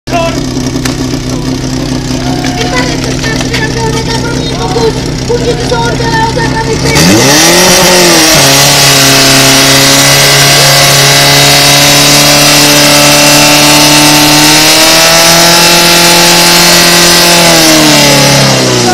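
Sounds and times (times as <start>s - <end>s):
fire pump engine at full throttle: 0.1s - 18.9s.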